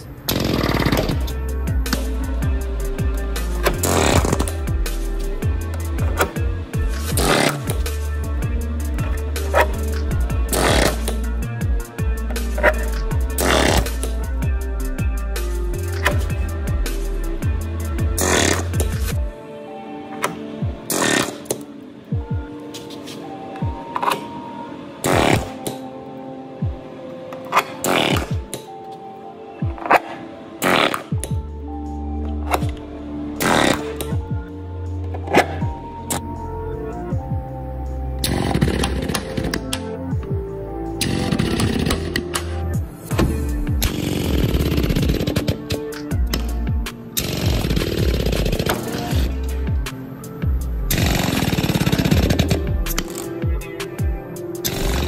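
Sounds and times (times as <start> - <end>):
background music with heavy beat: 0.3 - 26.0, 26.6 - 29.0, 29.6 - 55.0.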